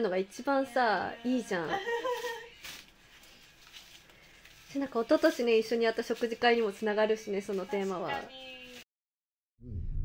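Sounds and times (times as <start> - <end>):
faint rustle: 2.0 - 8.8.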